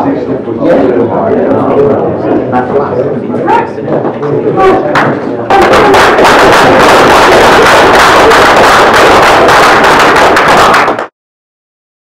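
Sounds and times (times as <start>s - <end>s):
audience applauding: 5.5s - 11.1s.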